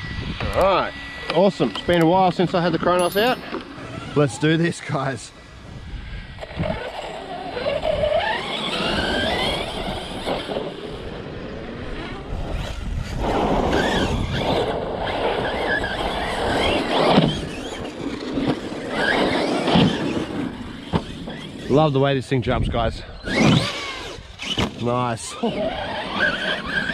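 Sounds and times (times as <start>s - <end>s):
electric motor whine: 0.0s - 21.7s.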